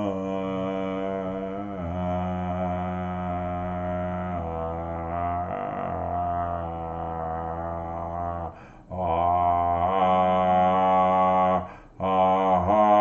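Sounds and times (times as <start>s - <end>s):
man chanting low drone: 0.0s - 13.0s.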